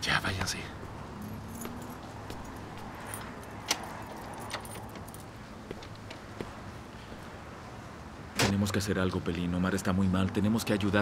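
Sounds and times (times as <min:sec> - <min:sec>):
keys jangling at a door: 0:01.1 - 0:06.2.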